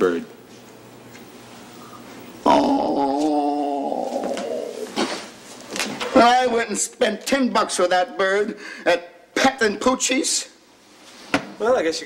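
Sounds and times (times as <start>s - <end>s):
person groaning in dismay: 2.4s - 4.9s.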